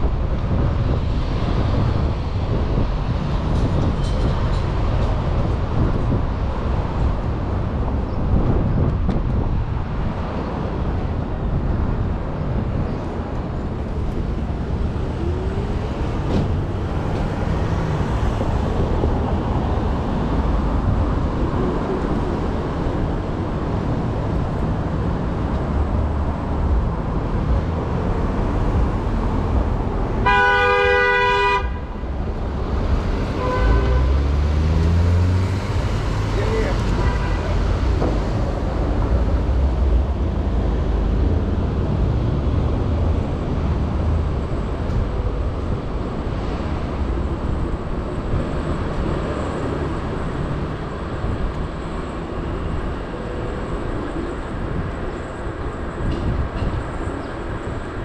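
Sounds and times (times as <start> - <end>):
city street noise: 0.0 - 58.0
vehicle horn honking: 30.2 - 32.0, 33.4 - 34.2, 37.0 - 37.6
vehicle engine pulling away: 34.0 - 36.6.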